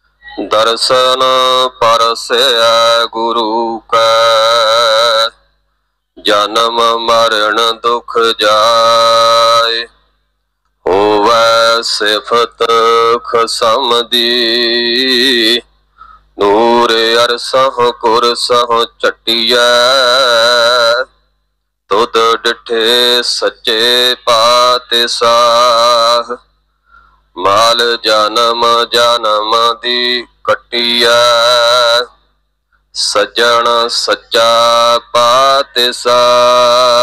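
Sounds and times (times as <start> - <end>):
man singing with vibrato: 0.0 - 5.6, 6.2 - 10.1, 10.8 - 21.3, 21.9 - 26.6, 27.3 - 37.0
man chanting melodically: 0.2 - 5.4, 6.2 - 10.0, 10.8 - 15.7, 16.4 - 21.2, 21.9 - 26.5, 27.4 - 32.2, 32.9 - 37.0.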